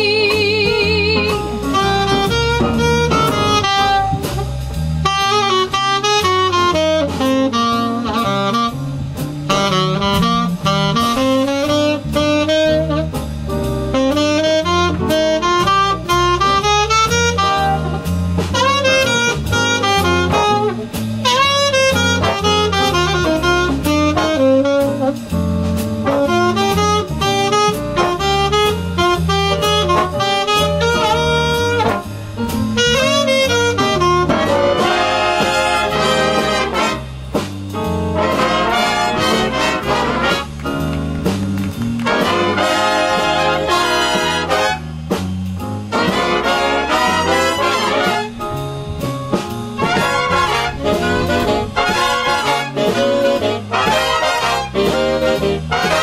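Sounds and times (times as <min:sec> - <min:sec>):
saxophone solo: 0:00.0 - 0:37.2, 0:37.8 - 0:45.2, 0:45.9 - 0:56.0
jazz big band playing: 0:00.0 - 0:56.0
walking bass: 0:00.0 - 0:56.0
brass section punched chords: 0:01.2 - 0:56.0.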